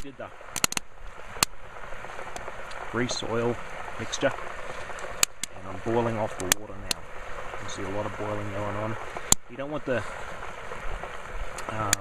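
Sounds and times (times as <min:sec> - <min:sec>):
sharp pops of hot fat: 0:00.0 - 0:05.6, 0:06.3 - 0:07.8, 0:08.9 - 0:09.6, 0:10.2 - 0:12.0
grease bubbling and hissing: 0:00.0 - 0:12.0.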